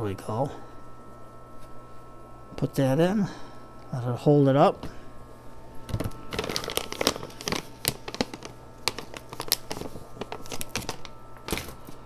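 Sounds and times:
plastic bag crinkling: 0:05.9 - 0:12.0.

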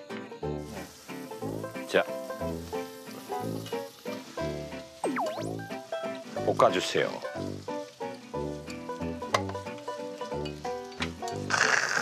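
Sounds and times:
bouncy background music: 0:00.0 - 0:11.7
meat sizzling in oil: 0:00.5 - 0:12.0
swooping whistle sound effect: 0:05.0 - 0:05.8.

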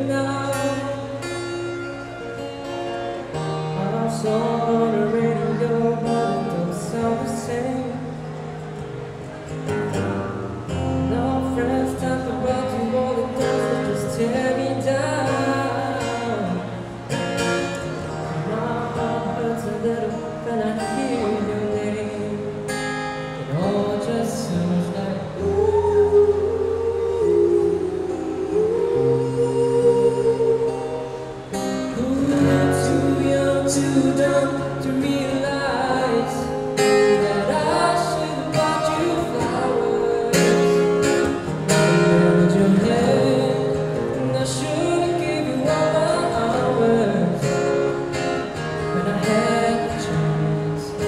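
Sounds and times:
man singing into microphone: 0:00.0 - 0:02.1, 0:03.7 - 0:08.4, 0:10.9 - 0:17.1, 0:18.0 - 0:48.0, 0:48.6 - 0:51.0
acoustic guitar: 0:00.0 - 0:51.0.

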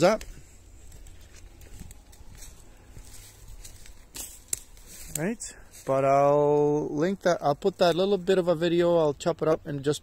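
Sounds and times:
footsteps on forest floor: 0:00.0 - 0:08.4
twig snapping: 0:03.6 - 0:05.3.

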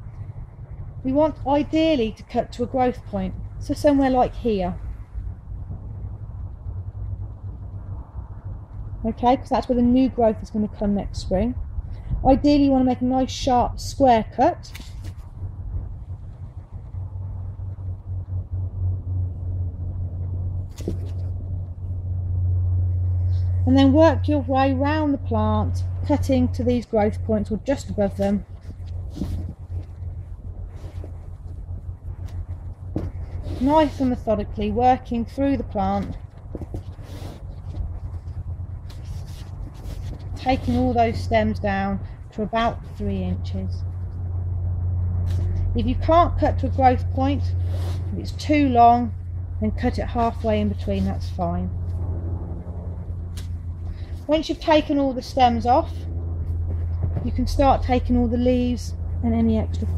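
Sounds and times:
low background rumble: 0:00.0 - 0:59.9
steady low hum: 0:00.0 - 0:59.9
leaves and stems rustling: 0:14.6 - 0:16.8, 0:22.9 - 0:44.0, 0:46.8 - 0:49.1.

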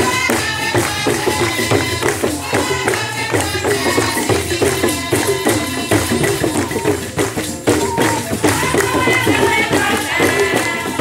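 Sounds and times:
choir singing: 0:00.0 - 0:06.9, 0:07.8 - 0:11.0
jingling tambourine beat: 0:00.0 - 0:11.0.

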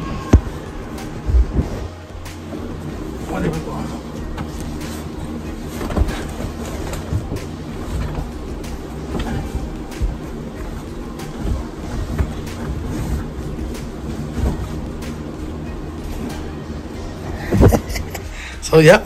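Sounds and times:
steady low hum: 0:00.0 - 0:19.0
bag thumping and knocking: 0:05.7 - 0:15.3.

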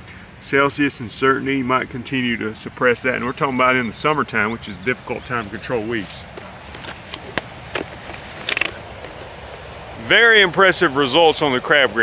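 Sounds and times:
faint outdoor background noise: 0:00.0 - 0:12.0
camera handling clicks and rustle: 0:06.3 - 0:09.7.

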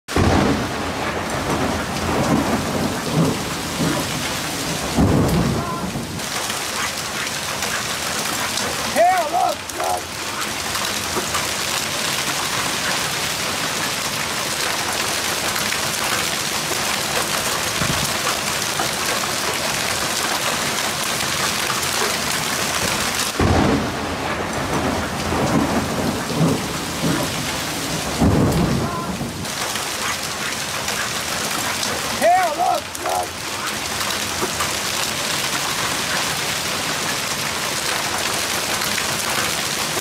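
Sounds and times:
hail and heavy rain: 0:00.1 - 0:40.0.

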